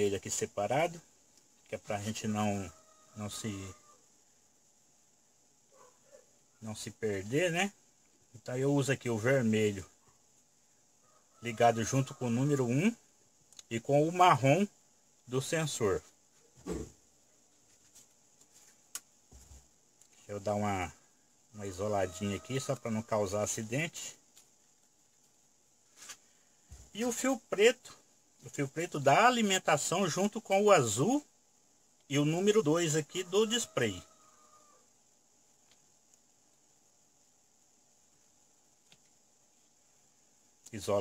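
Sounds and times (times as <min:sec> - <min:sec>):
soft clicks of wires handled: 0:35.6 - 0:36.6, 0:38.8 - 0:39.2.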